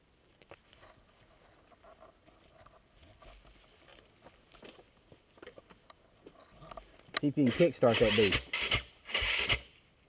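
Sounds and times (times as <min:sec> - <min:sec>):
faint clicks and scuffs: 0:00.3 - 0:07.3.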